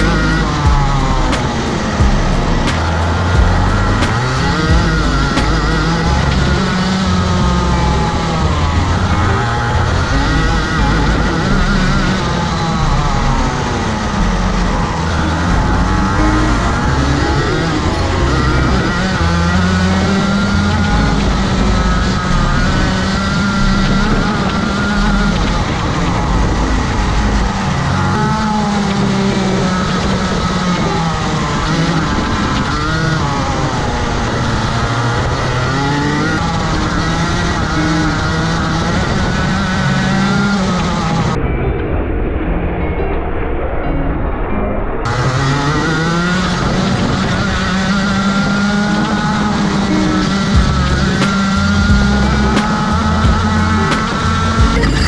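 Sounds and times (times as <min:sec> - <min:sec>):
kart engine accelerating: 0:00.0 - 0:41.4, 0:45.0 - 0:55.0.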